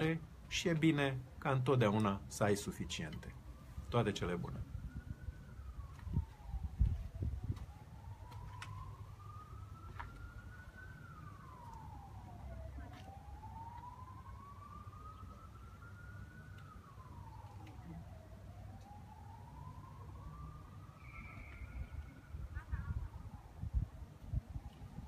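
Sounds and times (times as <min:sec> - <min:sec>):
faint siren wailing: 0:00.0 - 0:25.0.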